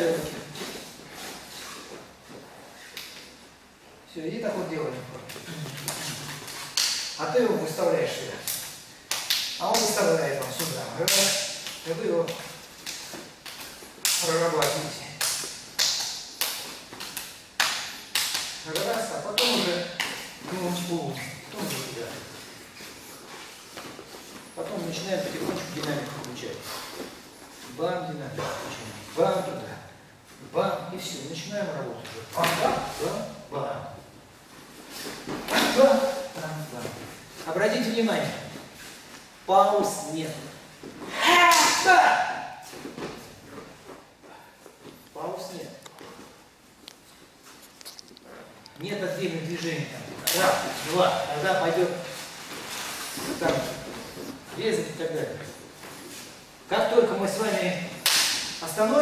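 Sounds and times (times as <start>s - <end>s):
sharp hand slaps: 5.9s - 7.2s, 8.5s - 10.0s, 10.6s - 20.2s, 41.5s - 41.9s, 58.0s - 58.6s
faint scuffs and light taps: 19.5s - 27.8s, 42.6s - 48.8s
man's loud vocal exclamation: 41.1s - 42.6s.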